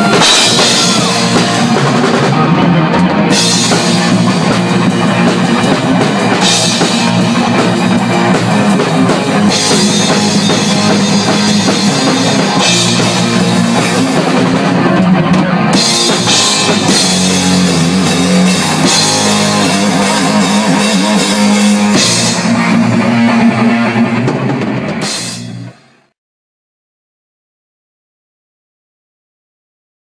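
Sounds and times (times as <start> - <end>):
distorted electric guitar riffing: 0.0 - 26.1
drum kit: 0.0 - 26.1.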